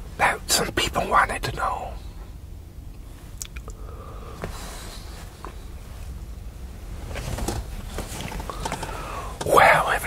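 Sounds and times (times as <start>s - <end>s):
man whispering: 0.1s - 2.2s, 9.3s - 10.0s.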